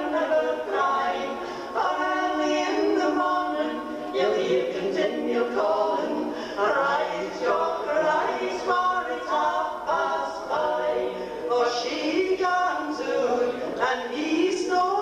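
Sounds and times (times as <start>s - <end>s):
women singing in close harmony: 0.0s - 15.0s.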